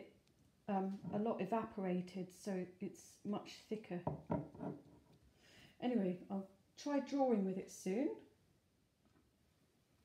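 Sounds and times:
woman speaking: 0:00.7 - 0:04.1, 0:05.8 - 0:08.2
glass jar knocking on wood: 0:01.0 - 0:01.2, 0:04.1 - 0:04.9.

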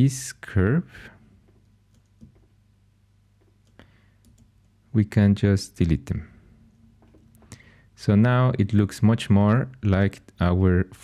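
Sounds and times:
low steady hum: 0:00.0 - 0:11.0
computer mouse clicks: 0:01.5 - 0:02.5, 0:03.4 - 0:04.8.

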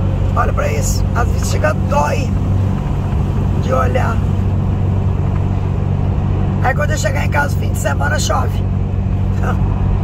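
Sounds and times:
truck engine and road noise: 0:00.0 - 0:10.0.

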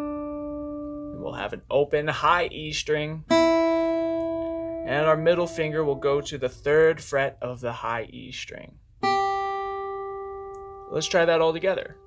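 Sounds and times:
acoustic guitar note plucked: 0:03.2 - 0:07.0, 0:09.0 - 0:12.0.

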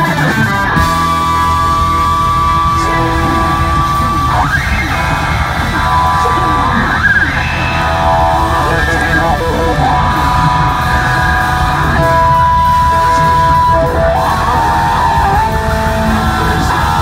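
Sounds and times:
blues-rock band playing: 0:00.0 - 0:17.0
electric guitar solo with string bends: 0:00.0 - 0:17.0.

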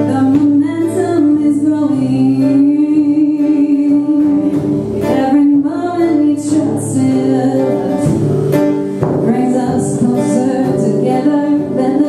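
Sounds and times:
acoustic guitar strumming: 0:00.0 - 0:12.0
woman singing: 0:00.0 - 0:12.0.

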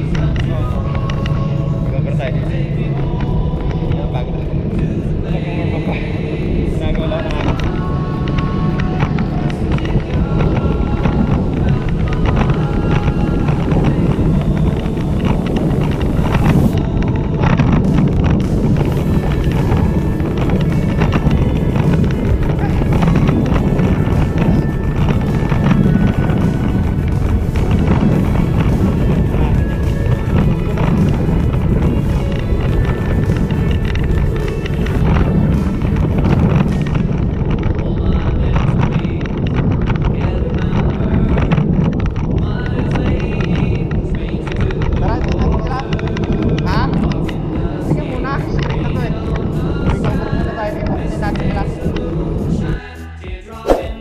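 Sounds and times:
song with singing: 0:00.0 - 0:54.0.

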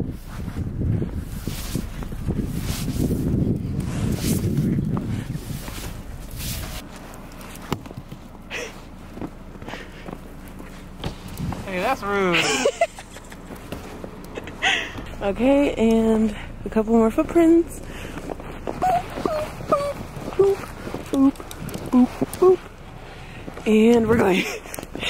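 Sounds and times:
footsteps in snow: 0:00.0 - 0:16.6, 0:17.2 - 0:25.0
snow brushed off a car: 0:00.0 - 0:25.0.

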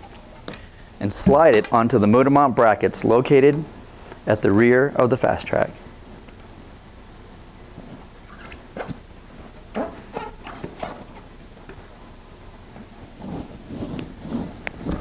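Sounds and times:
metal board squeaks and scrapes: 0:09.7 - 0:11.2.

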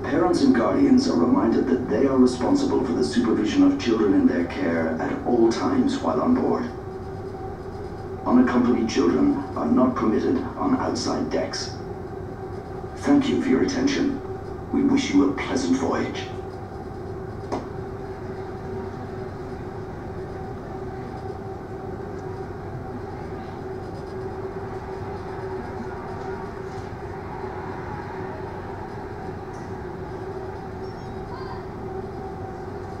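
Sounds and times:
mid-pitched hum: 0:00.0 - 0:33.0
ship engines droning: 0:00.0 - 0:33.0.

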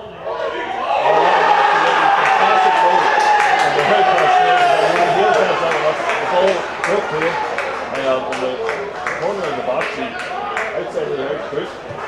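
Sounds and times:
crowd shouting: 0:00.2 - 0:09.4.

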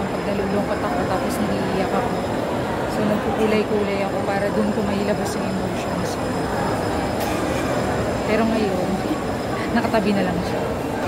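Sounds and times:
crowd hum and foot traffic: 0:00.0 - 0:11.0.

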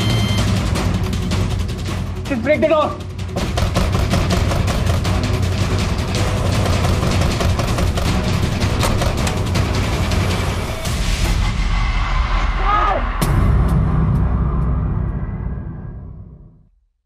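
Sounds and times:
tense dramatic score: 0:00.0 - 0:16.7
drum and timpani hits: 0:03.1 - 0:11.7.

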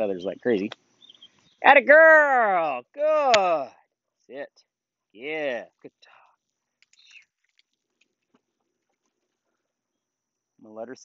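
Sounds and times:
faint clicks: 0:06.8 - 0:09.1.

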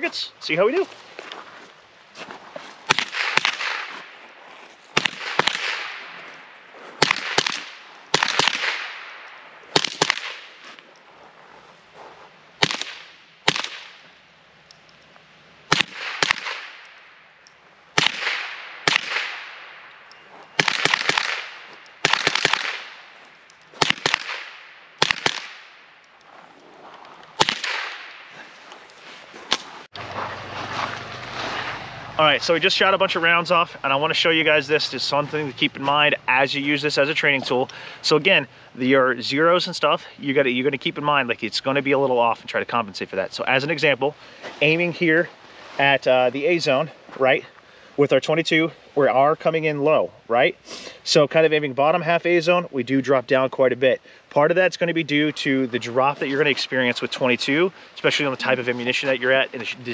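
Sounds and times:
rifle gunshots: 0:02.9 - 0:04.0, 0:05.0 - 0:06.2, 0:07.0 - 0:10.5, 0:12.6 - 0:14.0, 0:15.7 - 0:16.8, 0:18.0 - 0:19.9, 0:20.6 - 0:23.1, 0:23.8 - 0:25.8, 0:27.4 - 0:28.3
gunshot echo: 0:02.9 - 0:04.1, 0:05.0 - 0:06.2, 0:07.0 - 0:10.6, 0:12.6 - 0:14.0, 0:15.7 - 0:16.8, 0:18.0 - 0:19.9, 0:20.6 - 0:23.1, 0:23.8 - 0:25.8, 0:27.4 - 0:28.4.

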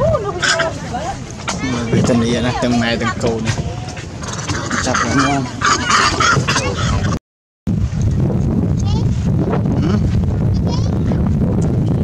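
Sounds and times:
voices: 0:00.0 - 0:07.2.

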